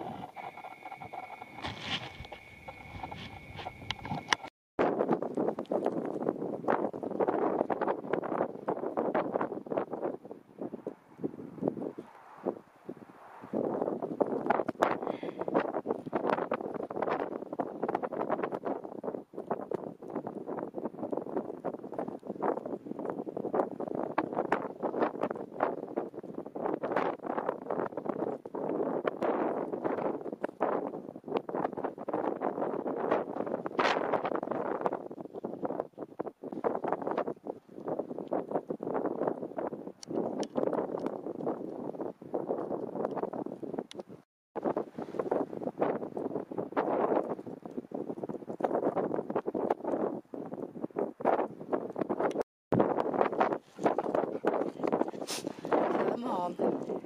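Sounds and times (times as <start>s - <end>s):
wind gusting against microphone: 0.0s - 57.0s.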